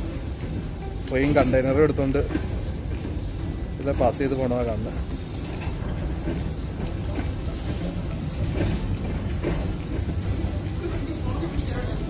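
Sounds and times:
freight train rumbling on rails: 0.0 - 12.0
wheels and couplings clanking: 0.0 - 12.0.

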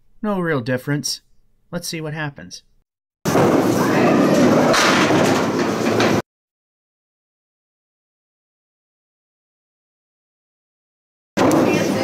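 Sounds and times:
bowling ball rolling on wooden lane: 3.3 - 6.2.

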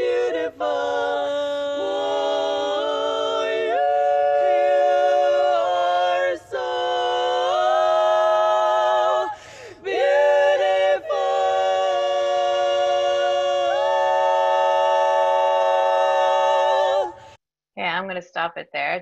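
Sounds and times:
women singing a cappella harmony: 0.0 - 17.4
singers breathing: 9.3 - 9.9, 17.1 - 17.4.

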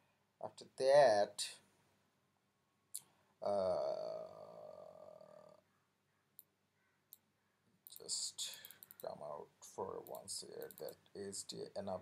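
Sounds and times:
sharp click: 10.0 - 11.0.

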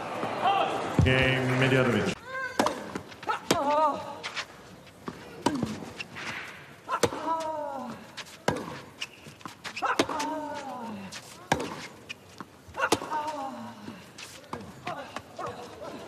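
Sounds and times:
racket striking tennis ball: 2.6 - 3.8, 5.4 - 7.4, 8.4 - 8.9, 9.7 - 10.6, 11.3 - 11.9, 12.8 - 13.2.

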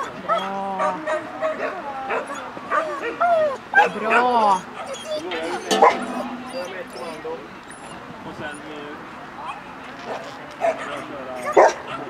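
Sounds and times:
dog barking in high yips: 3.8 - 7.9.

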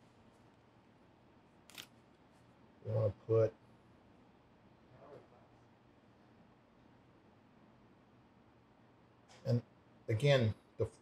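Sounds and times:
man speaking: 2.8 - 3.6, 9.5 - 11.0.

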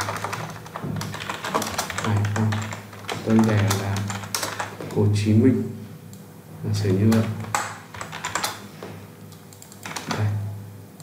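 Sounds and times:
computer keyboard typing: 0.0 - 5.0, 6.8 - 8.7, 9.3 - 10.3.

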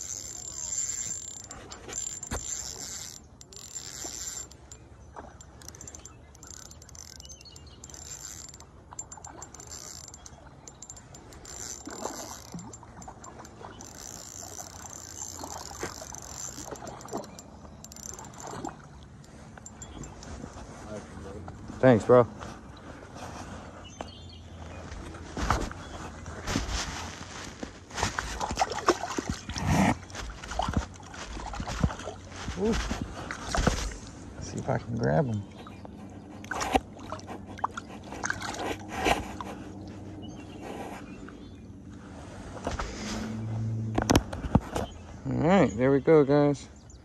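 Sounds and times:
fishing reel whirring: 0.0 - 20.4.

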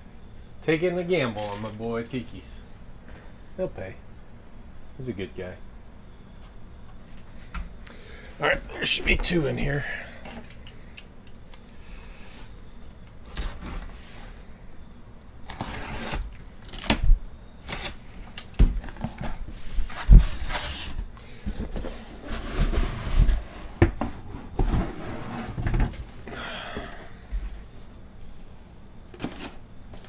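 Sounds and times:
cardboard flaps scraping and rustling: 18.7 - 26.1.

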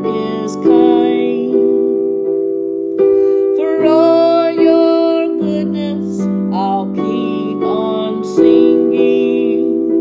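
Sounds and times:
woman singing gospel song: 0.0 - 1.9, 3.5 - 10.0
sustained keyboard chords: 0.0 - 10.0.

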